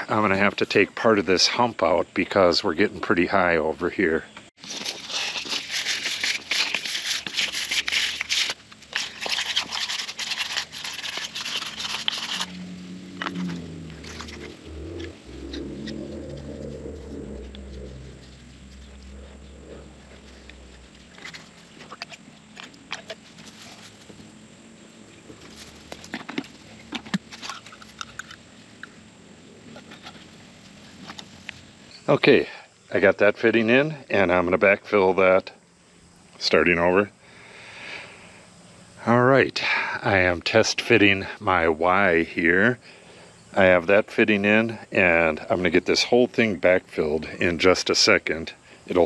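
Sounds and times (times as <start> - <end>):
sandpaper scraping pipe: 4.6 - 22.1.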